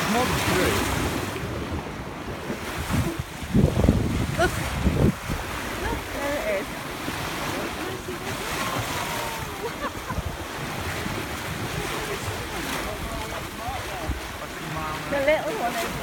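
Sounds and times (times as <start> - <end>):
water splashing along a hull: 0.0 - 16.0
wind buffeting microphone: 0.0 - 16.0.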